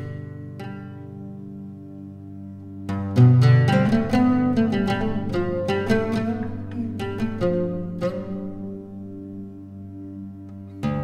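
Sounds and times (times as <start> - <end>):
plucked string notes: 0.0 - 11.0.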